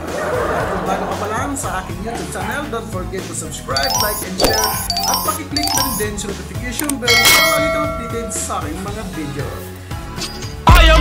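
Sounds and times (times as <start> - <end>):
bright bell ding: 3.8 - 6.1, 6.8 - 8.9.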